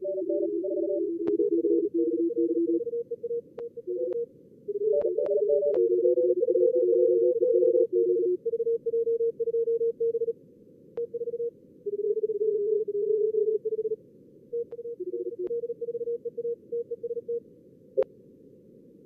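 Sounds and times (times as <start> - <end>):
morse code tones: 0.0 - 10.3, 14.6 - 17.4.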